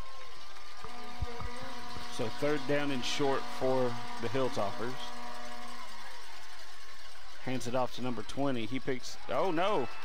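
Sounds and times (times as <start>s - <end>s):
low held hum: 0.0s - 10.0s
stadium crowd noise: 0.0s - 10.0s.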